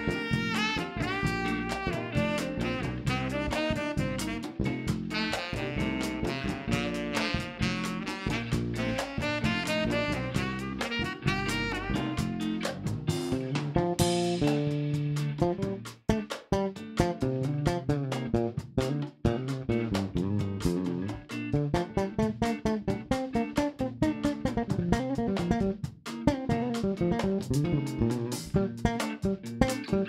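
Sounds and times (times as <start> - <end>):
tenor saxophone: 0.0 - 12.8
bossa nova band playing: 0.0 - 30.0.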